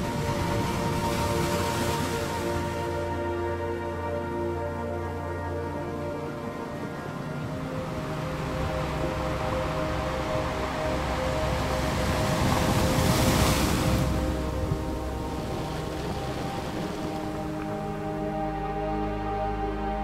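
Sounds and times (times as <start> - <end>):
ocean wave rushing: 0.0 - 3.2, 6.7 - 18.2
slow ambient music: 0.0 - 20.0.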